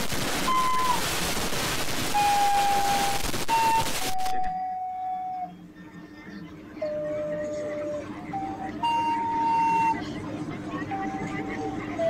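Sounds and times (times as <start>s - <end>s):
loud static hiss: 0.0s - 5.0s.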